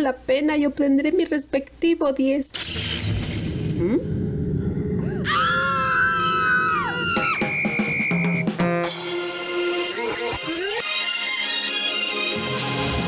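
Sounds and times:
wavering scream sound effect: 3.8s - 7.9s
drum roll: 6.8s - 9.1s.

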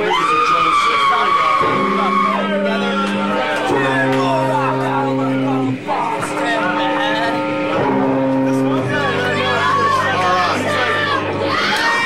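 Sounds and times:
crowd shouting: 0.0s - 12.0s
punk band playing distorted chords: 0.0s - 12.0s.

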